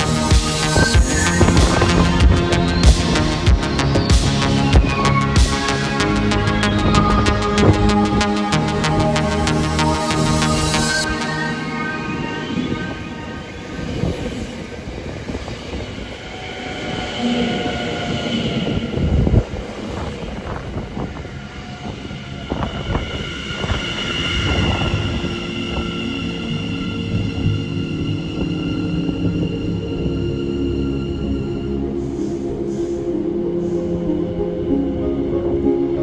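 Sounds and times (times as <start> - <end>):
squealing wheel whine: 0.0 - 34.9
electric train running slowly: 0.0 - 36.0.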